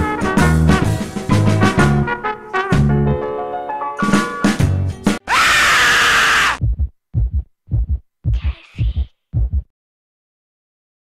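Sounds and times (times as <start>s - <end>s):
loud scream: 5.2s - 6.6s
heartbeat thumps: 6.6s - 9.7s.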